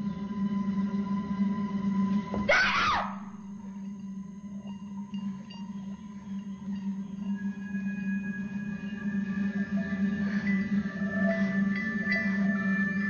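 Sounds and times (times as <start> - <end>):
sustained background score tones: 0.0 - 2.4, 3.2 - 13.0.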